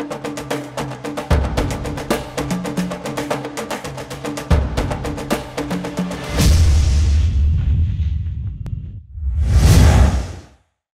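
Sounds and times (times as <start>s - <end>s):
whoosh: 6.4s - 10.6s
low rumble: 7.2s - 10.4s.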